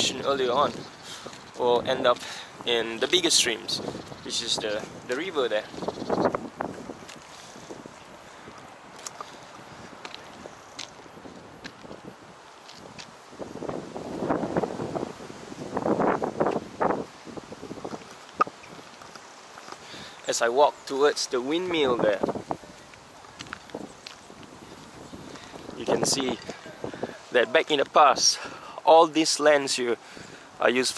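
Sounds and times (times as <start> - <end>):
wind across microphone: 0.0 - 20.2, 21.6 - 28.6.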